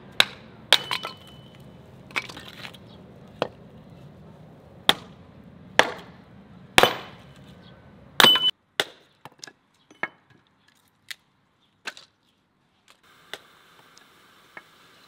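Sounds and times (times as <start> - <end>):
hatchet chopping wood: 0.2 - 1.3, 4.8 - 5.2, 5.8 - 6.2, 6.8 - 7.2, 8.2 - 9.5.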